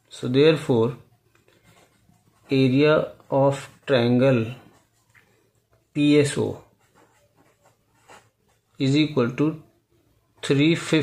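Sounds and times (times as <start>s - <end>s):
man speaking: 0.0s - 1.1s, 2.4s - 4.8s, 5.9s - 6.7s, 8.8s - 9.7s, 10.4s - 11.0s
pen scratching on paper: 1.6s - 5.3s, 6.0s - 9.0s.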